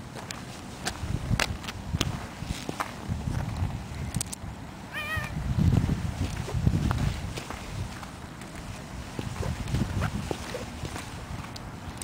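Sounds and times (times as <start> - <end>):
cat meowing: 4.9 - 5.4
footsteps on snow: 5.6 - 11.6.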